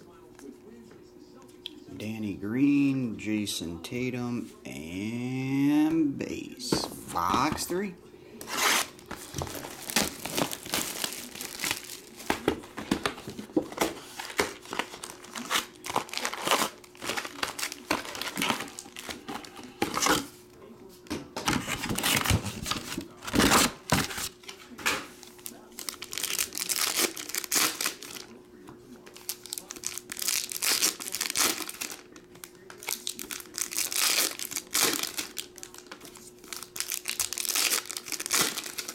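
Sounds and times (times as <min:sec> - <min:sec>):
foil wrappers crinkling and tearing: 0:08.4 - 0:20.3, 0:21.5 - 0:28.4, 0:29.0 - 0:38.9.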